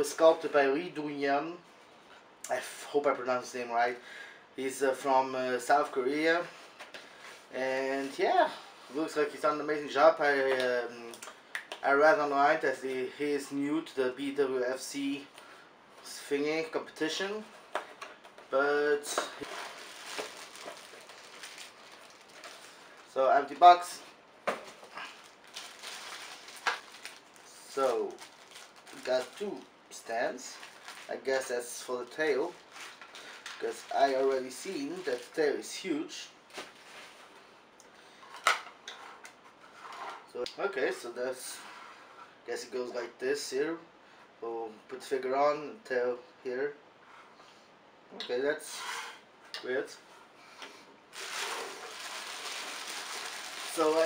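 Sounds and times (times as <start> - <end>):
plastic packaging crinkling: 19.1 - 23.9, 24.6 - 29.7, 30.3 - 35.4, 36.5 - 37.5, 51.1 - 54.0.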